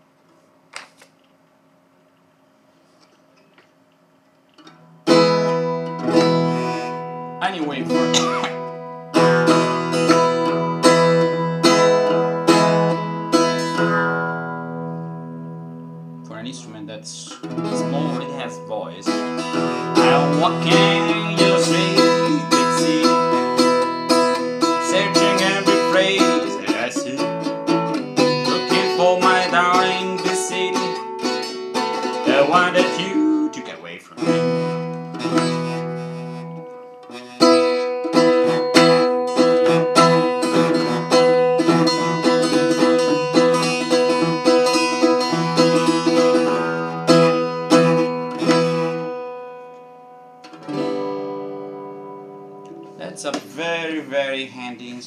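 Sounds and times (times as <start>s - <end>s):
acoustic guitar playing: 4.6s - 55.0s.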